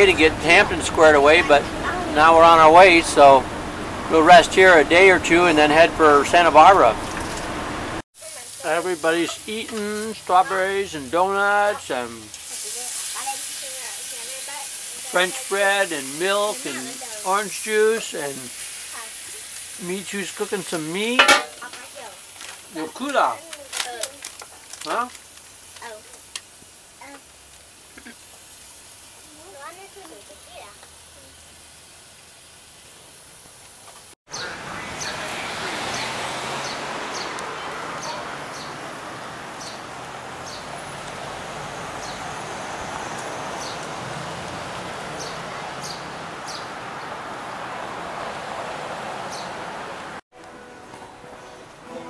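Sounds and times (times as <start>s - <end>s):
children's voices calling out: 0.0s - 3.4s, 8.5s - 12.2s
outdoor background hiss: 0.0s - 52.0s
steady background hiss: 7.9s - 23.6s
small birds chirping: 34.3s - 41.2s, 41.8s - 44.1s, 45.1s - 47.2s, 49.2s - 49.6s.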